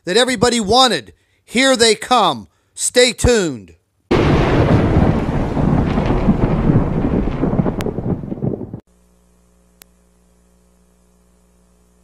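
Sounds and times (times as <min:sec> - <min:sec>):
loud steady rumbling: 0:04.1 - 0:08.8.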